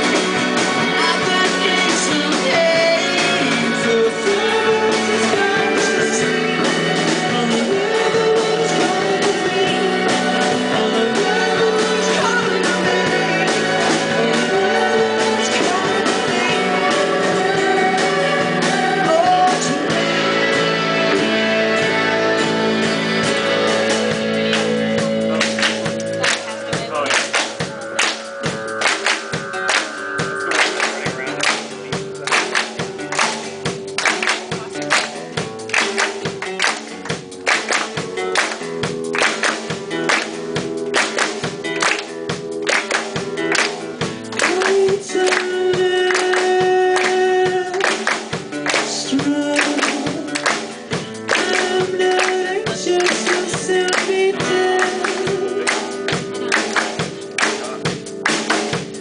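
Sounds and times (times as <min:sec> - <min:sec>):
singer: 0:00.0 - 0:27.1, 0:44.0 - 0:57.9
bass: 0:00.0 - 0:59.0
acoustic guitar strumming: 0:02.4 - 0:59.0
hand claps: 0:24.4 - 0:59.0.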